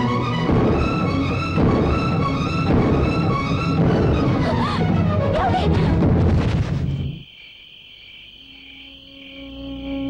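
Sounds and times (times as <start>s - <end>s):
crickets chirring: 6.4s - 10.0s.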